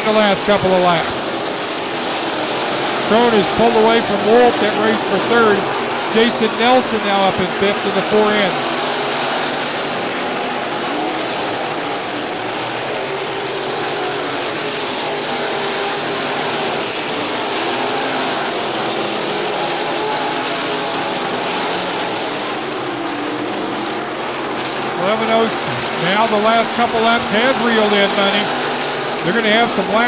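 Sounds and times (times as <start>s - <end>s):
race car engines running hard: 0.0s - 30.0s.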